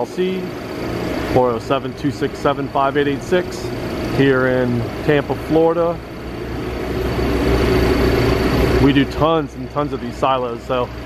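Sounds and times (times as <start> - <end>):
engine rumbling: 0.0 - 11.0.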